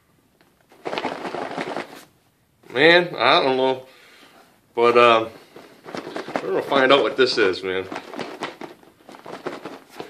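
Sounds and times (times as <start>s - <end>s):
cardboard package rustling: 0.7s - 2.1s, 5.0s - 10.0s.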